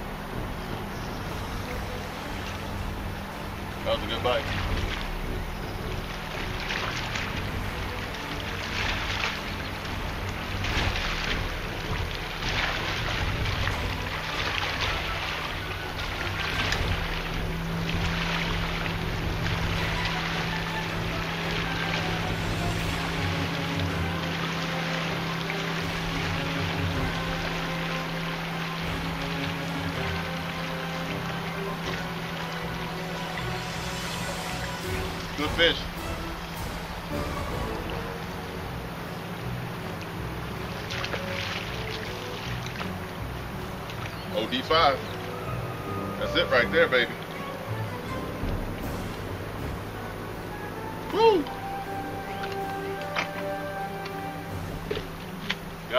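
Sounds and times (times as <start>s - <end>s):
faint background music: 0.0s - 55.9s
low sustained note: 0.0s - 55.9s
water noise: 0.0s - 55.9s
wind gusts: 0.0s - 55.9s.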